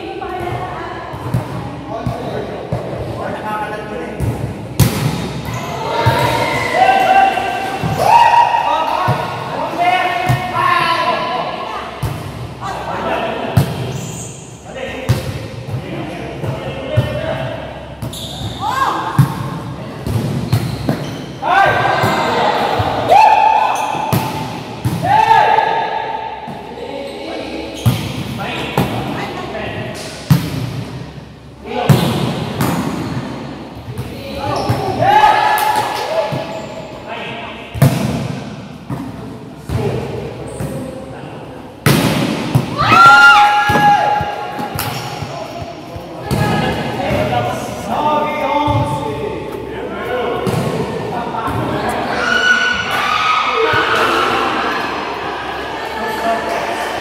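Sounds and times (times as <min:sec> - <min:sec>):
volleyball thuds echoing: 0:04.2 - 0:06.4, 0:41.8 - 0:47.6
players shouting: 0:05.5 - 0:09.2, 0:42.7 - 0:44.8, 0:51.7 - 0:57.0.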